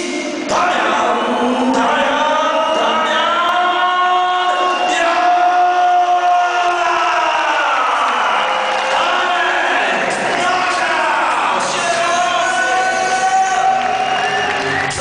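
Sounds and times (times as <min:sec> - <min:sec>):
crowd chanting: 0:00.0 - 0:15.0
crowd cheering: 0:00.5 - 0:15.0.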